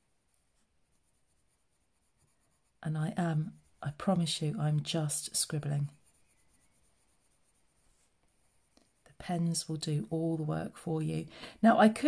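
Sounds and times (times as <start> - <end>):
pencil scratching on card: 0.4 - 10.2.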